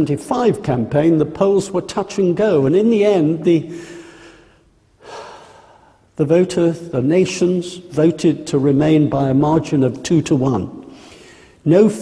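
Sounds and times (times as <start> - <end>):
man speaking: 0.0 - 3.9, 6.2 - 10.9, 11.6 - 12.0
man drawing sharp breath: 10.9 - 11.6.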